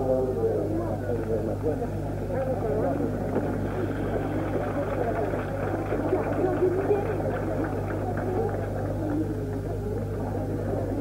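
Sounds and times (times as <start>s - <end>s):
muffled speech: 0.0s - 11.0s.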